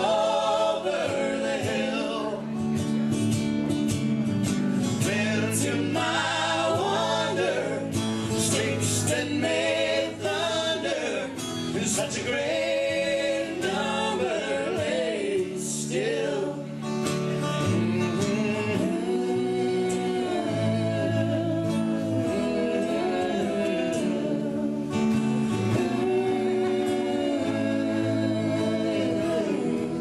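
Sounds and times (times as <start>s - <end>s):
people singing in harmony: 0.0s - 2.7s, 4.8s - 30.0s
acoustic guitars strumming: 0.0s - 30.0s.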